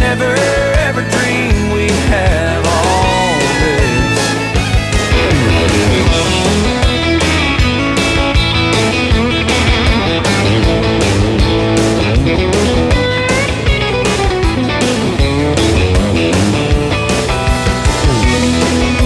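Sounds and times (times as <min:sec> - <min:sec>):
electric guitar: 0:00.0 - 0:19.0
steady drum beat: 0:00.0 - 0:19.0.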